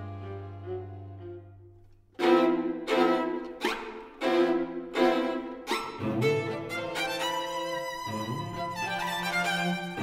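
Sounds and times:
string quartet playing a tango: 0:00.0 - 0:10.0.

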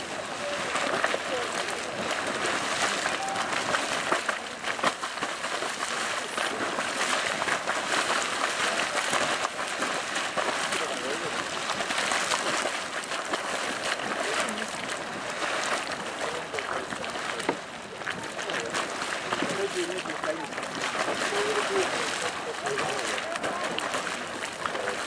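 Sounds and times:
geyser water splashing: 0:00.0 - 0:25.0.

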